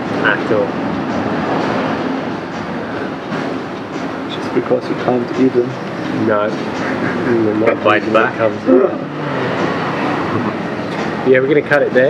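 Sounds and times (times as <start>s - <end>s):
steady background noise rush: 0.0s - 12.0s.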